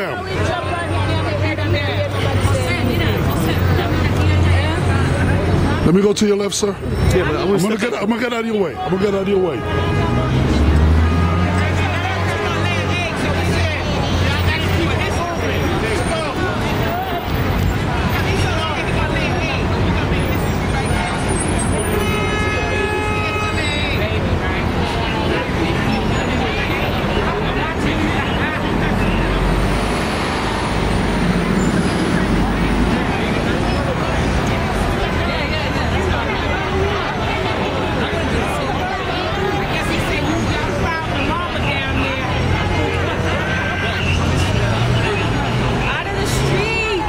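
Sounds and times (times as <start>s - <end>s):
city street traffic: 0.0s - 47.0s
crowd chatter: 0.0s - 47.0s
vehicle horn: 9.4s - 12.9s, 21.8s - 24.0s, 43.2s - 44.3s
heavy vehicle engine rumbling past: 22.7s - 43.5s.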